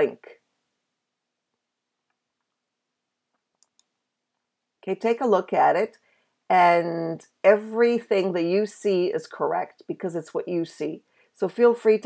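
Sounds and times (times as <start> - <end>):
computer mouse clicks: 3.3 - 4.0.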